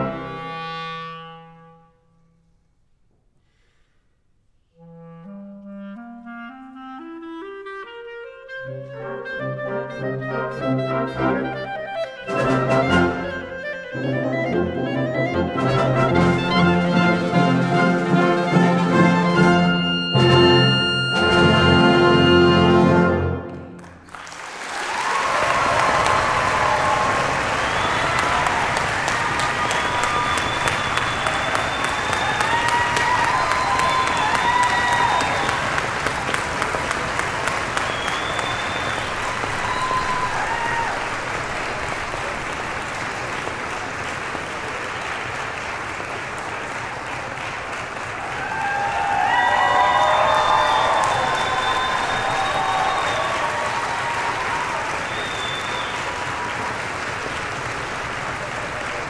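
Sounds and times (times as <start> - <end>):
audience applauding: 12.0 - 59.0
crowd shouting and cheering: 24.8 - 42.5, 48.0 - 57.1.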